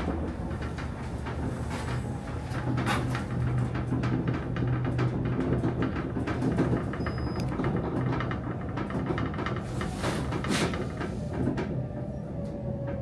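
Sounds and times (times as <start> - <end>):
elevator car rattling: 0.0 - 13.0
elevator motor hum: 0.0 - 13.0.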